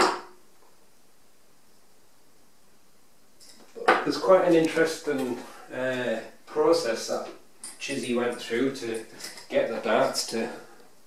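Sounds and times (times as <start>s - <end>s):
dart striking a dartboard: 0.0s - 0.4s.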